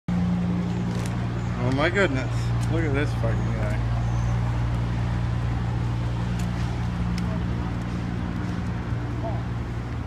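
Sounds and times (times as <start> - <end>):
street traffic hum: 0.1 - 10.0.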